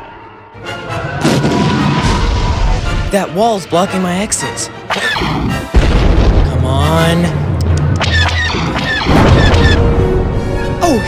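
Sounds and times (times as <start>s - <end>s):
cartoon crash and explosion: 1.2s - 3.0s, 8.9s - 9.9s.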